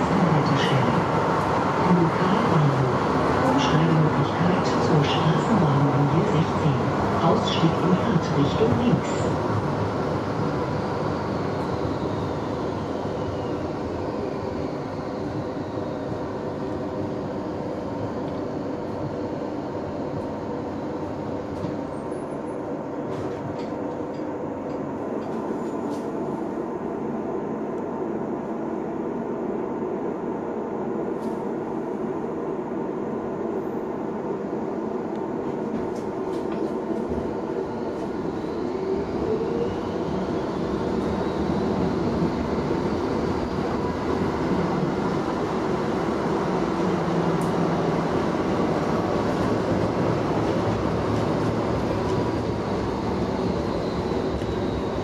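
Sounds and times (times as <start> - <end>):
tram rumble and rattle: 0.0 - 55.0.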